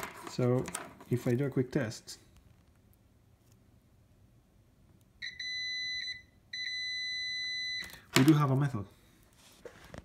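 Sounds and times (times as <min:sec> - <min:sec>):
continuity tester beeping: 0:05.2 - 0:08.0.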